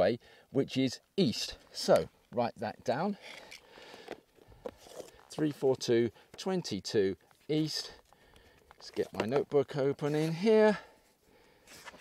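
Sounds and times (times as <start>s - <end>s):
person speaking: 0.0s - 3.6s, 4.9s - 8.1s, 8.8s - 11.0s.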